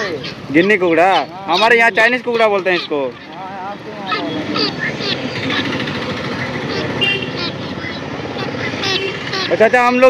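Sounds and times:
guinea fowl chirping: 0.0s - 10.0s
street traffic: 0.0s - 10.0s
motorcycle engine running: 0.3s - 10.0s.

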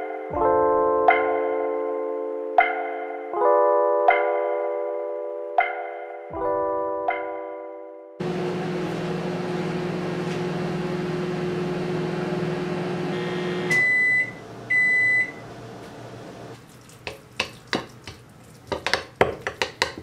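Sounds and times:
microwave oven humming: 8.2s - 16.6s
microwave beeps: 13.1s - 15.6s.

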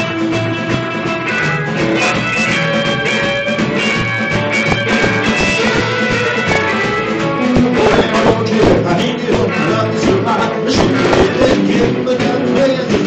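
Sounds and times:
rockabilly band playing: 0.0s - 13.0s.

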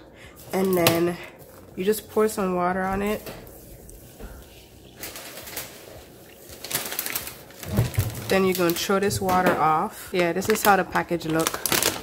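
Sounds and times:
water pouring into plastic bowl: 3.5s - 8.8s.

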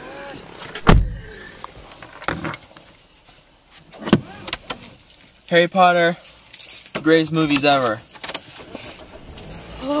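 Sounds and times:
soft rustling handling noise: 1.6s - 4.0s.

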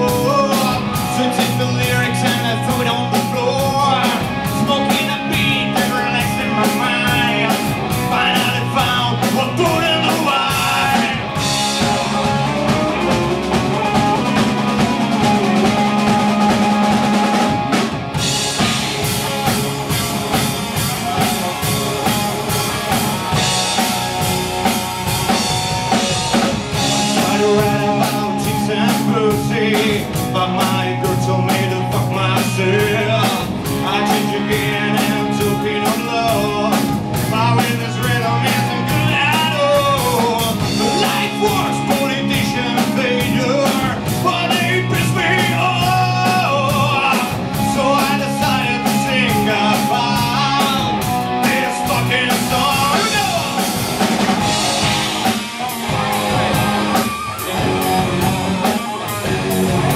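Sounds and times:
bass guitar: 0.0s - 59.9s
distorted electric guitars: 0.0s - 59.9s
drum kit steady beat: 0.0s - 59.9s.

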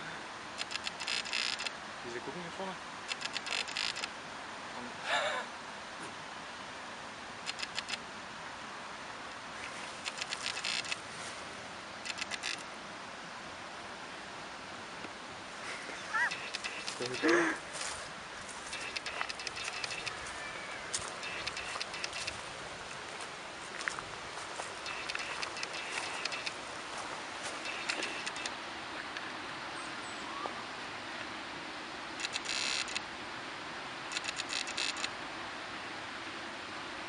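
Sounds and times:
outdoor background noise: 0.0s - 37.0s
soft clicks and rustles: 9.3s - 12.7s, 15.0s - 29.3s
hissing rustles: 9.4s - 12.7s, 15.4s - 29.4s.

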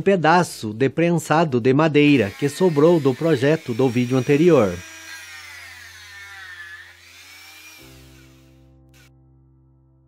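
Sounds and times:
rotary tool whining: 2.1s - 9.1s.

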